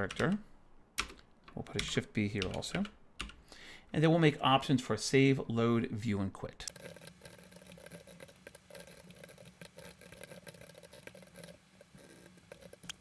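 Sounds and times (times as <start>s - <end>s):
faint steady hum: 0.0s - 13.0s
faint keyboard clicking: 1.0s - 3.4s, 6.7s - 13.0s.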